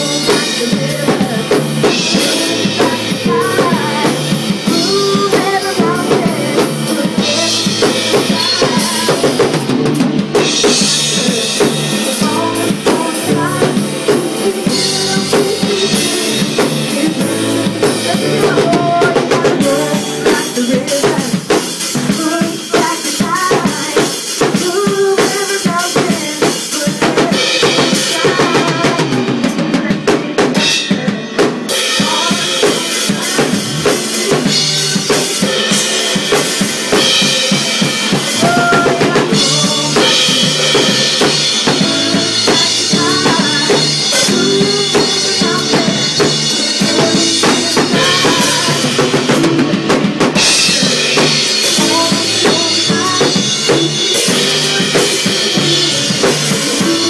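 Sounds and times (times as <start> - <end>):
drum kit rock beat: 0.0 - 57.0
recorded band track: 0.0 - 57.0.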